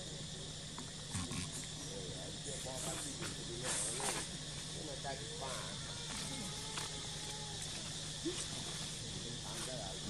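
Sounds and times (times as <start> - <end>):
high insect drone: 0.0 - 10.0
rustling hisses: 1.0 - 10.0.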